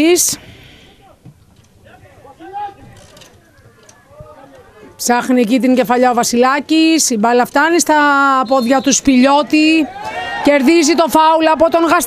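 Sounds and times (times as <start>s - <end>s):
distant voices calling: 0.0s - 5.8s.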